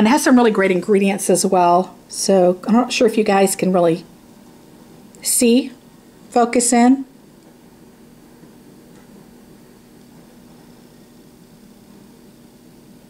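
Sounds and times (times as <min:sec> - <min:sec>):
background hiss: 0:00.0 - 0:13.0
faint low hum: 0:00.0 - 0:13.0.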